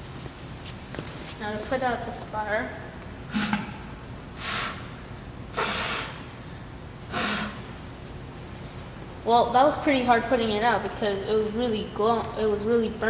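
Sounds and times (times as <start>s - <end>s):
breathy puffs blowing candle: 5.6s - 6.2s, 7.1s - 7.6s.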